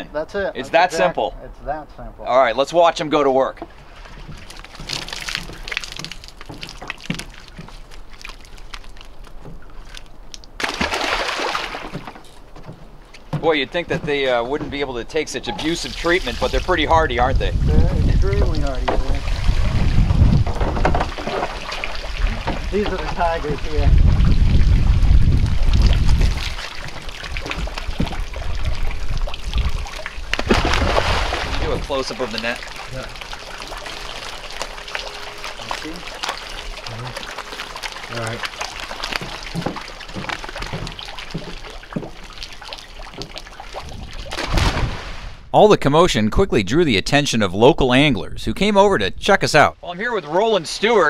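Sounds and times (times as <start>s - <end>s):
water sloshing and splashing: 3.6s - 16.8s, 18.1s - 45.5s
heavy low rumble: 45.5s - 49.8s.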